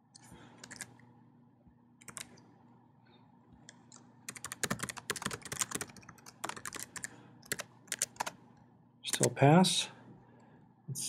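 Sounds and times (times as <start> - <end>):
computer keyboard typing: 0.6 - 1.0, 2.0 - 2.4, 3.7 - 8.4, 9.1 - 9.4.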